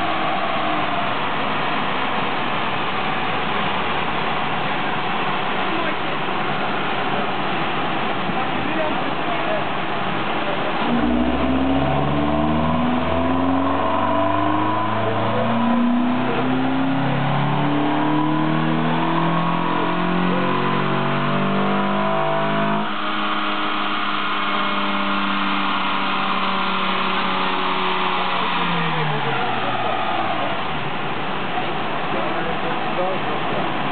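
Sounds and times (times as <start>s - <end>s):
car engine revving on dynamometer: 7.2s - 33.1s.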